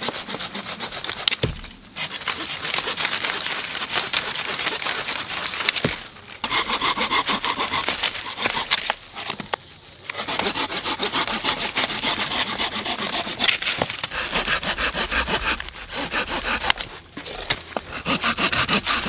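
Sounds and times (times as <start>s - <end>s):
hand saw cutting branch: 0.0s - 9.4s, 10.1s - 19.0s.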